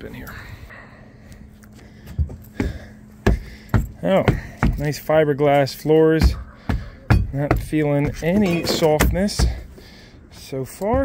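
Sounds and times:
footsteps on boat deck: 1.6 - 11.0.

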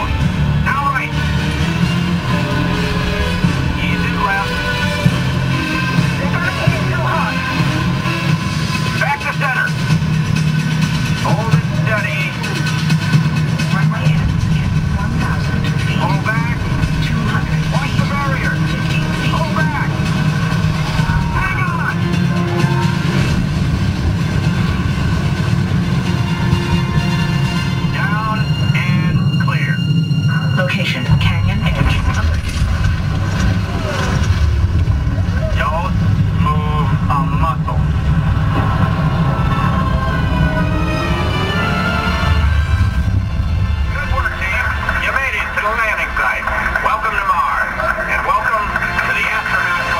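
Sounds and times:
steady low rumble: 0.0 - 49.9.

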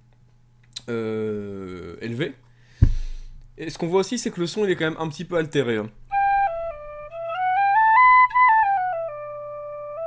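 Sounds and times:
tin whistle playing a tune: 6.1 - 10.0.

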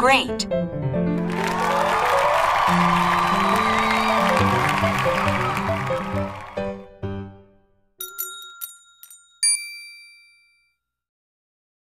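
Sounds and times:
loud bell ding: 8.0 - 10.7.

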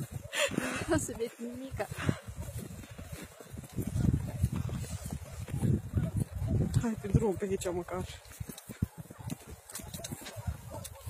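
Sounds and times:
footsteps crunching through snow: 0.0 - 11.0.

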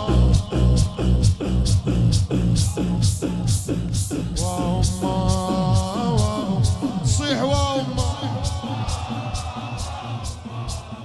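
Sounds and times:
steady pounding beat: 0.0 - 11.0.

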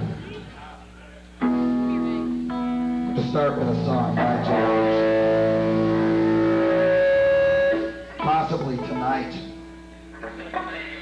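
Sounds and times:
distorted electric guitar chord: 1.4 - 10.1
higher guitar tone: 1.4 - 10.1.

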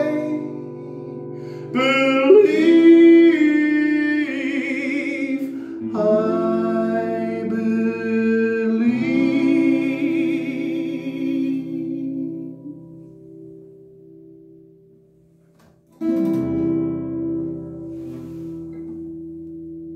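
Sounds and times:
person singing with vibrato: 0.0 - 13.0
acoustic guitar chord: 0.0 - 19.9.

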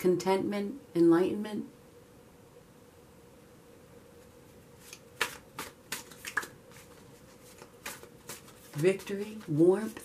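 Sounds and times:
cards being shuffled: 4.8 - 10.0.

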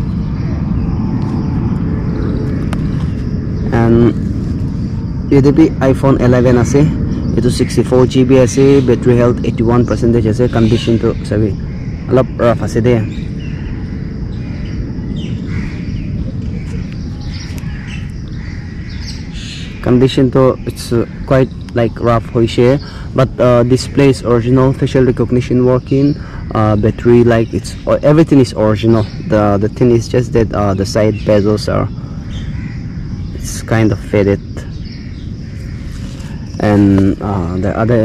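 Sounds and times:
birds chirping: 0.0 - 38.0
low outdoor rumble: 0.0 - 38.0.

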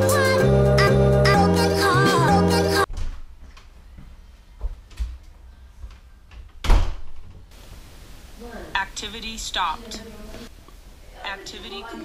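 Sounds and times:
front door thudding shut: 2.9 - 3.3, 6.6 - 7.4.

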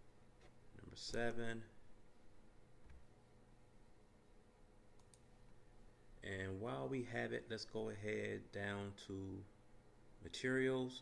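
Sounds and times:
faint clicks: 5.0 - 5.3.

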